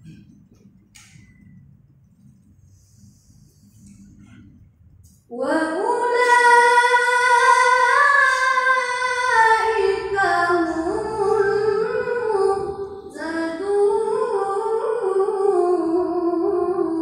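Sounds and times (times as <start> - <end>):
boy reciting melodically: 5.3 - 17.0.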